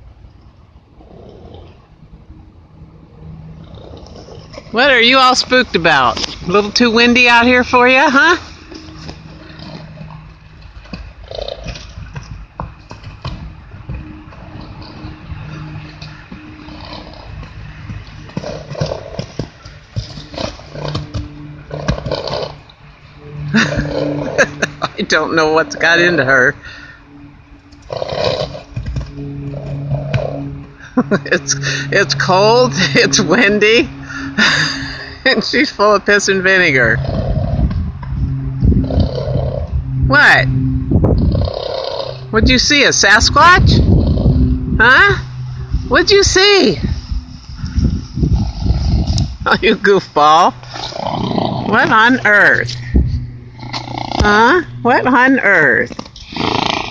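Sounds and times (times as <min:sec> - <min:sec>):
wind buffeting microphone: 0:00.0 - 0:22.2, 0:36.5 - 0:56.6
horse moving about: 0:00.0 - 0:56.9
low engine drone: 0:00.0 - 0:56.9
horse snorting: 0:00.9 - 0:02.1, 0:03.2 - 0:07.4, 0:08.6 - 0:24.9, 0:27.8 - 0:35.0, 0:36.7 - 0:38.0, 0:38.7 - 0:39.8, 0:41.2 - 0:42.3, 0:43.7 - 0:44.6, 0:48.2 - 0:49.5, 0:50.6 - 0:55.0, 0:55.8 - 0:56.9.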